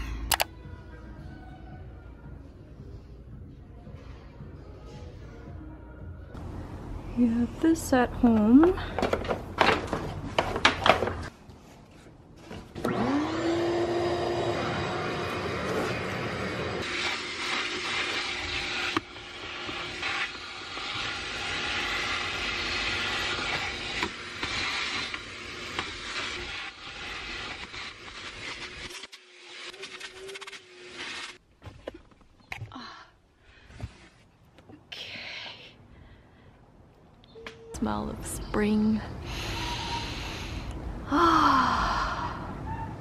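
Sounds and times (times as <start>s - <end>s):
shop vacuum motor whine: 12.8s - 26.8s
vacuum sucking up crumbs: 12.8s - 31.4s.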